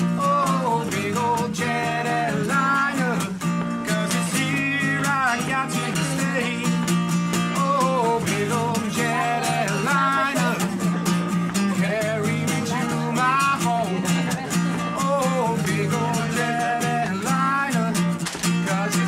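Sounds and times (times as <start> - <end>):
acoustic guitar strumming: 0.0 - 19.0
man singing: 0.0 - 19.0.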